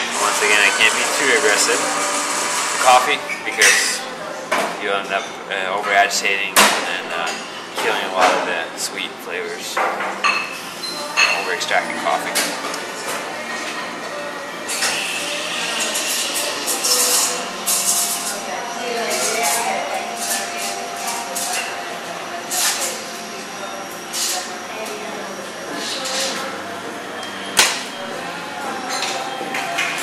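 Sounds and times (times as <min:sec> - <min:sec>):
people talking: 0:00.0 - 0:01.9, 0:02.8 - 0:04.2, 0:04.8 - 0:09.8, 0:11.3 - 0:12.6, 0:18.3 - 0:23.6
cups and dishes clinking: 0:03.2 - 0:08.6, 0:09.7 - 0:14.0, 0:28.6 - 0:30.0.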